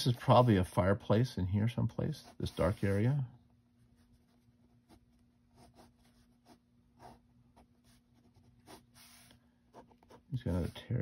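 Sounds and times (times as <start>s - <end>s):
pen scratching on paper: 4.0s - 10.8s.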